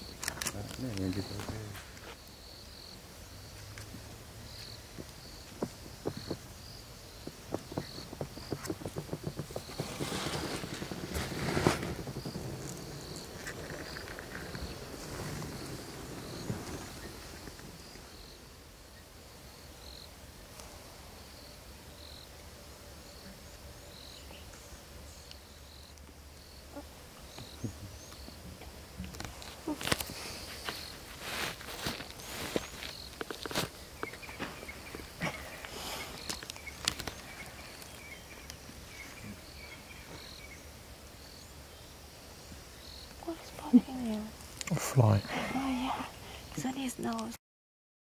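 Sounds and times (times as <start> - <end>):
insect chirping: 0.0 - 47.4
animal walking through dry grass: 7.1 - 17.9, 29.8 - 35.0.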